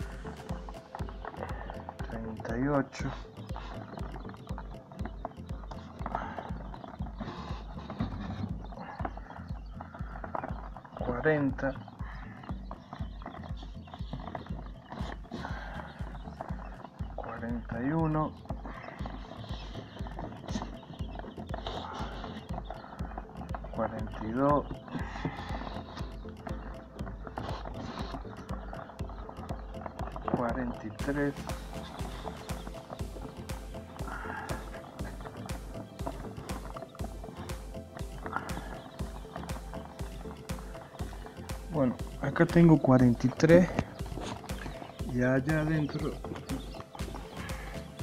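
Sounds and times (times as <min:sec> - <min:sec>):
chicks cheeping: 0:00.0 - 0:48.0.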